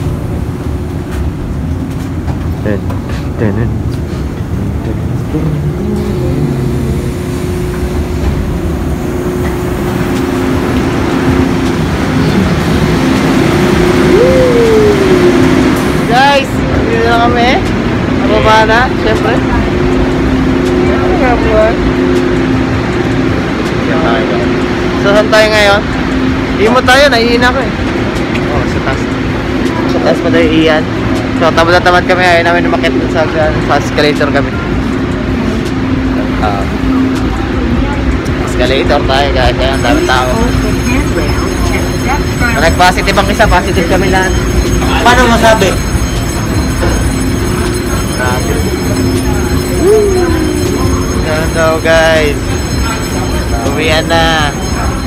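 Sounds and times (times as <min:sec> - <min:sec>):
low hum: 0:00.0 - 0:55.0
steady rumble: 0:00.0 - 0:55.0
people talking: 0:02.6 - 0:04.0, 0:04.6 - 0:07.2, 0:14.1 - 0:21.9, 0:23.7 - 0:25.9, 0:26.5 - 0:55.0.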